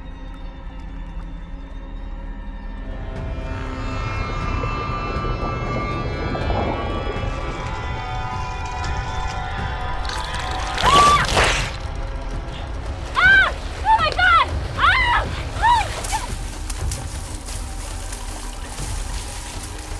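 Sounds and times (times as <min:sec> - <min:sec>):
eerie music drone: 0:00.0 - 0:19.9
low rumble: 0:00.0 - 0:19.9
loud water splash: 0:09.5 - 0:12.0.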